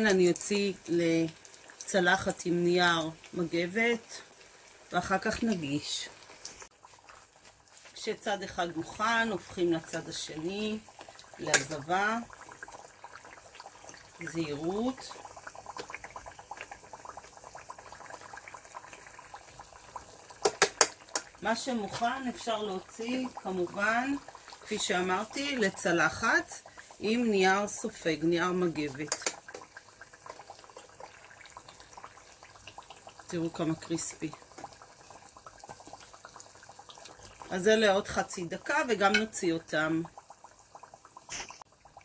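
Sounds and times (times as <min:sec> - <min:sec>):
food deep-frying in oil: 0:00.0 - 0:42.0.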